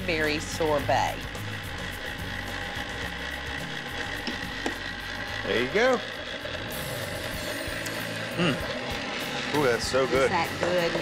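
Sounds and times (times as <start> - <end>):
background music: 0.0 - 11.0
ice cream maker motor running: 0.0 - 11.0.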